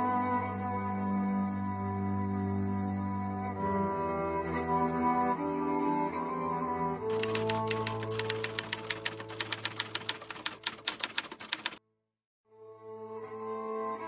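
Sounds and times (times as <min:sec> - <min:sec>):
sad cello music: 0:00.0 - 0:07.2, 0:12.5 - 0:14.0
typewriter key clicks: 0:07.1 - 0:11.8.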